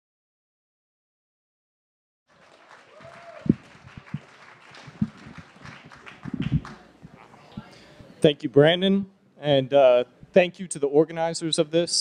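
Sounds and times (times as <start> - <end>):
audience applause: 2.3 - 7.2.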